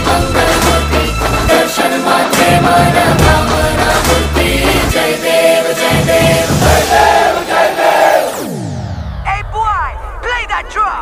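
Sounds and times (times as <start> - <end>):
dance music: 0.0 - 11.0.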